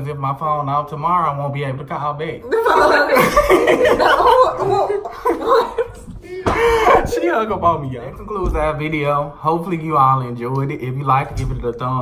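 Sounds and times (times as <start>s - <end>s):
man and woman laughing: 2.5s - 7.1s.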